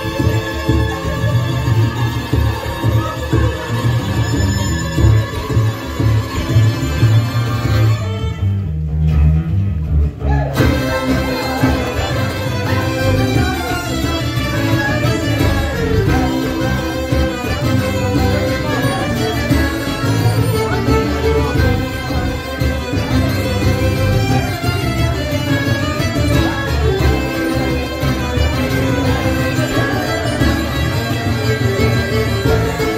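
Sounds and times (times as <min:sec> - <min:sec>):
accordion: 0:00.0 - 0:08.6, 0:10.5 - 0:32.9
fiddles: 0:00.0 - 0:08.8, 0:10.4 - 0:32.9
folk band: 0:00.0 - 0:32.9
plucked acoustic bass line: 0:00.0 - 0:32.9
frame drum: 0:10.3 - 0:32.9.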